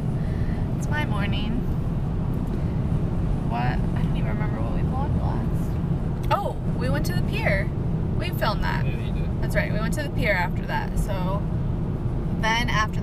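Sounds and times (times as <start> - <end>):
road and engine rumble in car: 0.0 - 13.0
woman talking: 0.8 - 1.6, 3.5 - 11.4, 12.4 - 13.0.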